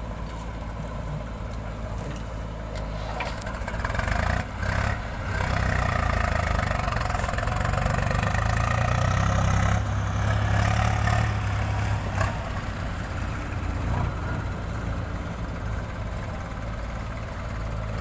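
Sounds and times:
diesel engine under load: 0.0 - 18.0.

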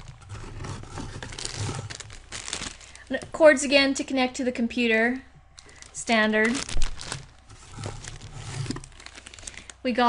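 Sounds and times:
plastic bags rustling: 0.0 - 3.4, 5.5 - 9.9.

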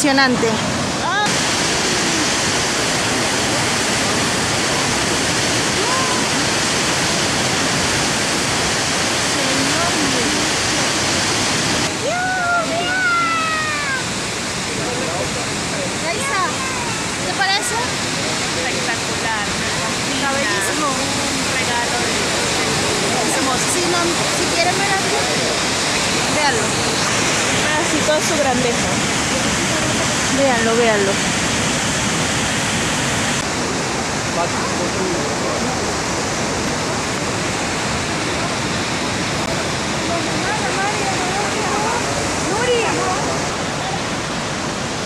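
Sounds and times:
faint voices: 0.0 - 7.1, 9.3 - 31.2, 33.4 - 45.0
waterfall rushing: 0.0 - 45.0.

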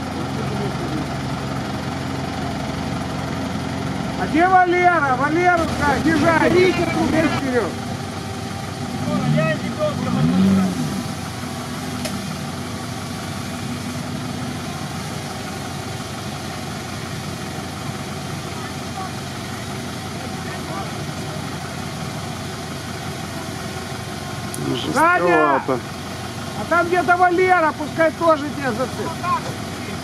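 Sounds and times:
truck engine idling: 0.0 - 30.0.

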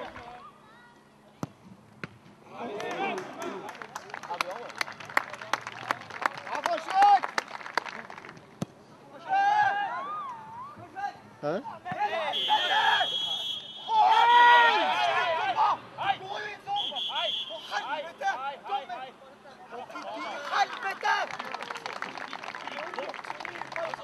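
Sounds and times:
players' voices: 7.9 - 24.0
loud shout: 9.2 - 11.1, 11.9 - 18.9
referee's whistle blasts: 12.3 - 14.2, 16.7 - 17.9.

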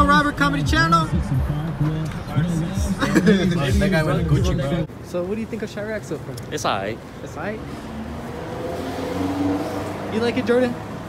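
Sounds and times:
vehicle engine humming past: 7.4 - 11.0.

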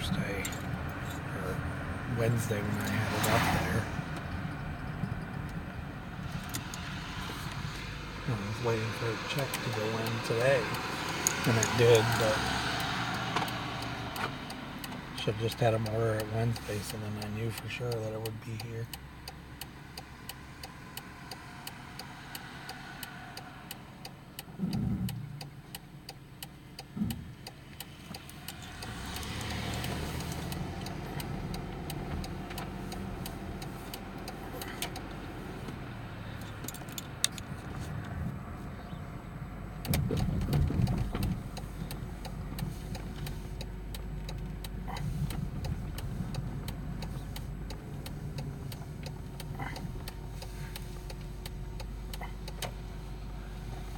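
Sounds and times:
car engine and road noise: 0.0 - 53.9.

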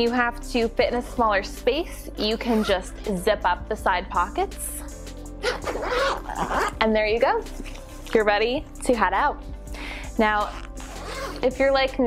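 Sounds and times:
background music: 0.0 - 12.0
small dog crying: 5.4 - 6.8.

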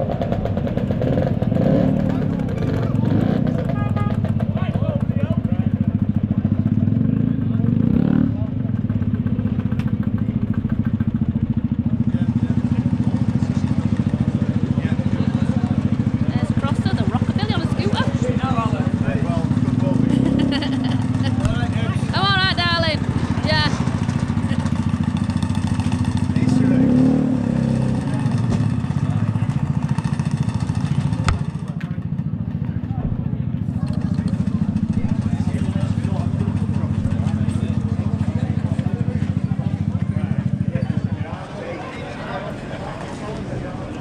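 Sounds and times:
scooter engine idling: 0.0 - 26.6, 27.5 - 44.0.

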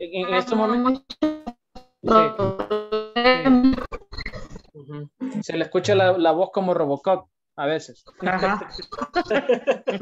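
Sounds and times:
choppy robotic voice on video call: 0.0 - 9.3.

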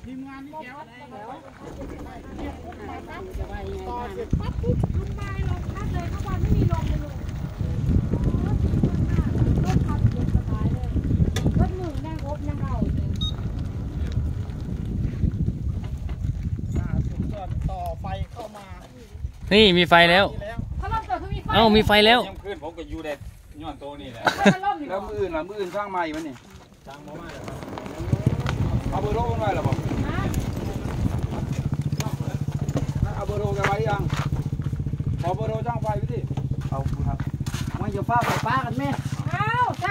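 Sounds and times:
wind rumble on microphone: 1.6 - 24.0, 26.6 - 39.9
motorcycle engine idling: 1.7 - 17.4, 27.1 - 39.9.

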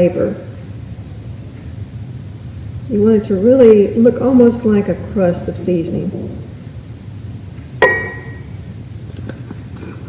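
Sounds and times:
glass jar clinking: 7.8 - 8.5.

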